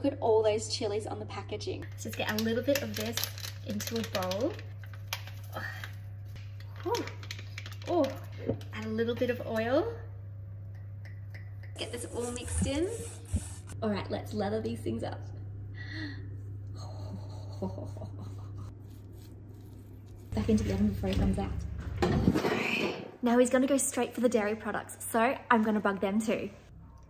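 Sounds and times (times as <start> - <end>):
steady low hum: 0.0 - 27.0
pastry brush rubbing on chicken: 17.9 - 20.8.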